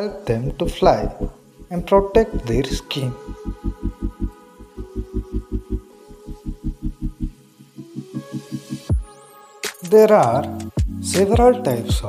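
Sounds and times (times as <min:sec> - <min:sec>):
held synth notes: 0:00.0 - 0:09.6
fast low pulse: 0:00.5 - 0:07.4.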